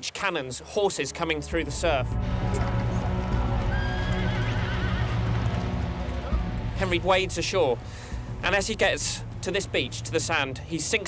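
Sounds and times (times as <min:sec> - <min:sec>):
background music with drone: 0:01.0 - 0:11.0
horse whinnying: 0:03.7 - 0:05.2.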